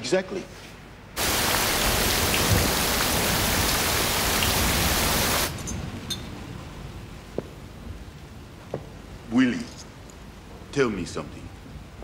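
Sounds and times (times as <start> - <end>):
heavy rain on a metal roof: 1.2 - 6.0.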